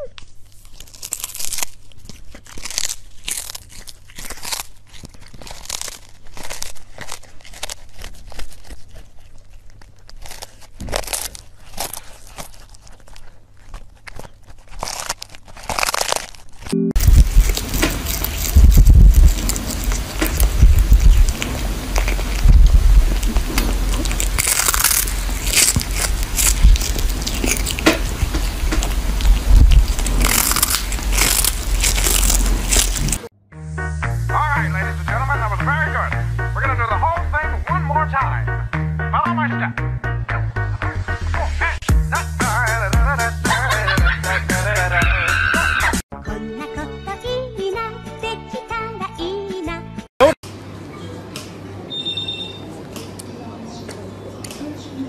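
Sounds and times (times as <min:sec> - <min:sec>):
cat chewing raw fish: 0:00.2 - 0:33.3.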